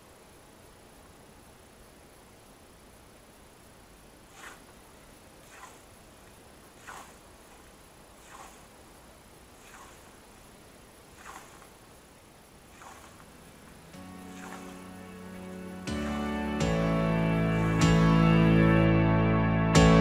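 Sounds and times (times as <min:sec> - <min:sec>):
scythe swishing through grass: 0:04.2 - 0:12.0, 0:12.6 - 0:16.8.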